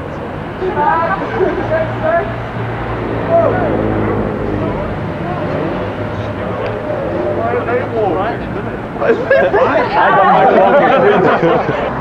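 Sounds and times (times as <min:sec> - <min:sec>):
faint voices talking: 0:00.0 - 0:12.0
street traffic: 0:00.0 - 0:12.0.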